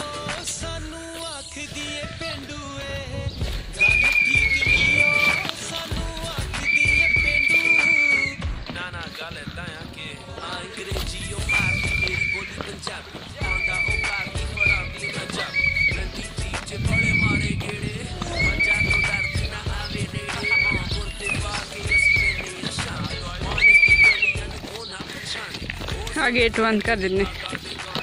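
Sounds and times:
whistle blown to call cattle: 3.7 - 5.5, 6.4 - 8.4, 11.3 - 12.6, 13.4 - 16.1, 16.7 - 17.6, 18.3 - 24.4.

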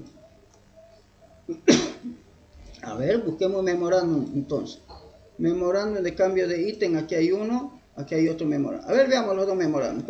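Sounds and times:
person sneezing: 1.5 - 2.2.

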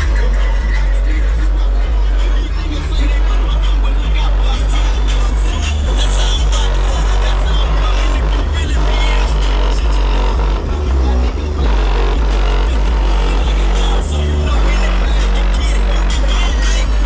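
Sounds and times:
music with heavy pulsing bass: 0.0 - 17.0.

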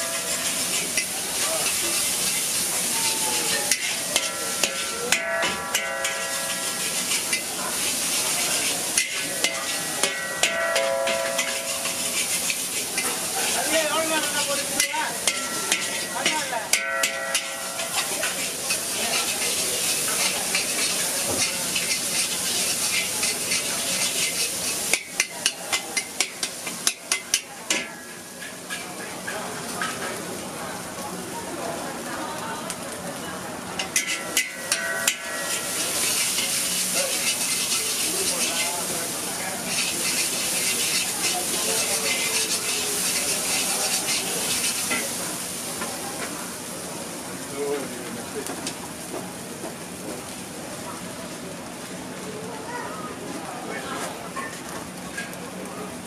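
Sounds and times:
metal ladle clanking on wok: 0.0 - 2.5, 3.6 - 7.5, 8.9 - 13.2, 14.7 - 28.9, 33.8 - 38.7, 39.7 - 45.2
noodles sizzling in a wok: 0.0 - 56.0.

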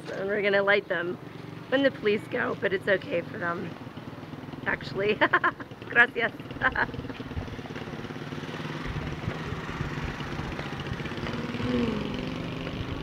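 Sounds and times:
motorcycle engine idling: 0.1 - 13.0.

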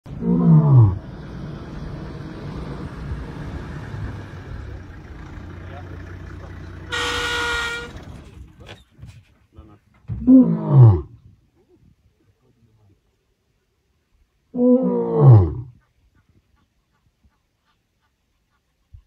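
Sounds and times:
lion roaring: 0.1 - 1.7, 10.2 - 11.1, 14.5 - 15.7
vehicle engine idling: 1.0 - 8.7
horn toot: 6.9 - 8.1.

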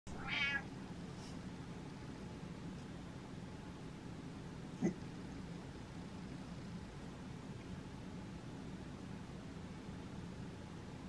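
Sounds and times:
cat meowing: 0.1 - 0.7.

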